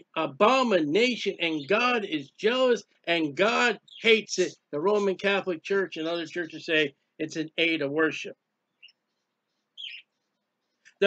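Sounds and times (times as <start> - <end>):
high bird chirp: 1.3 - 2.5, 3.6 - 4.7, 8.7 - 11.0.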